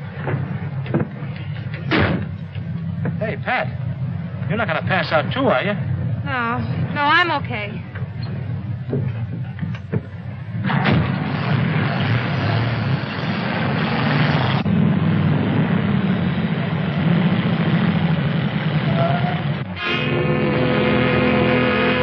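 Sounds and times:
engines rumbling: 0.0s - 22.0s
steady tones: 0.0s - 22.0s.

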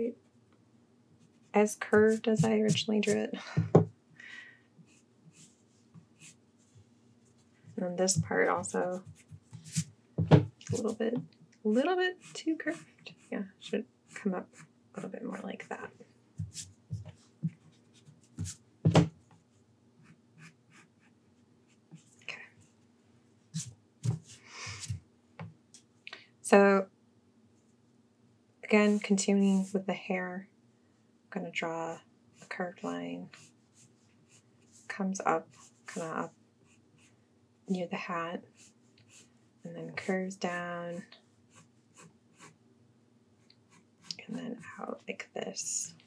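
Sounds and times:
pencil scratching on paper: 1.2s - 3.3s, 4.8s - 11.1s, 11.7s - 13.5s, 19.3s - 22.1s, 31.9s - 37.2s, 38.0s - 42.6s, 43.4s - 45.2s
pencil tapping on paper: 2.0s - 3.9s.

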